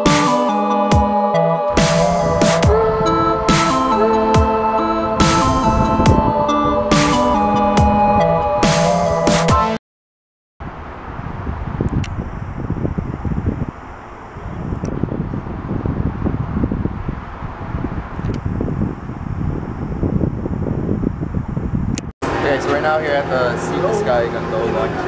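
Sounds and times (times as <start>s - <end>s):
wind buffeting microphone: 1.7s - 8.6s, 10.6s - 25.0s.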